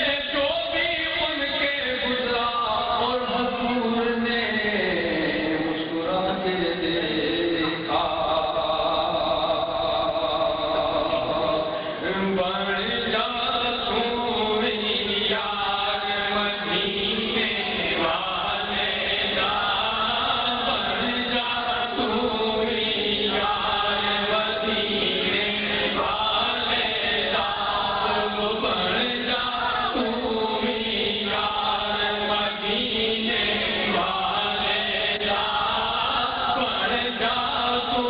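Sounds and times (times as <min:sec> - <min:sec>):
man chanting into microphone: 0:00.0 - 0:38.0.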